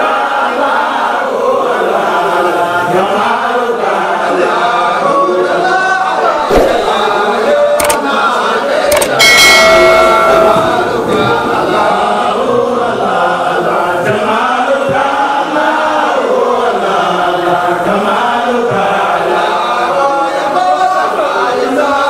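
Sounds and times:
men chanting together: 0.0 - 22.0.

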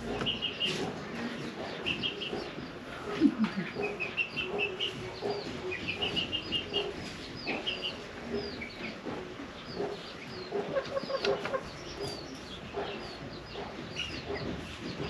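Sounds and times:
chickens clucking: 0.0 - 15.0.

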